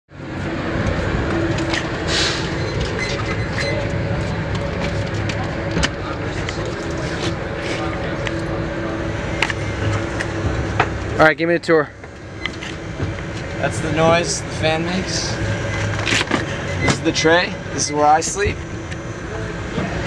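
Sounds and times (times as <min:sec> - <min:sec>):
van interior rumble: 0:00.1 - 0:20.0.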